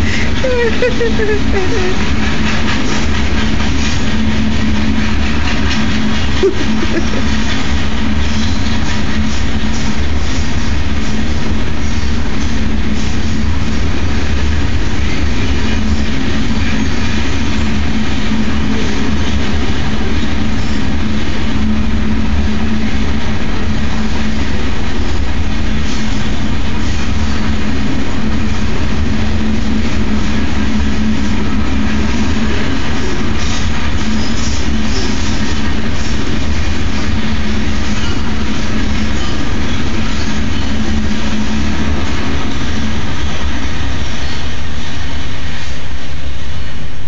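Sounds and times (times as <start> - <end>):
train wheels rumbling on rails: 0.0 - 47.0.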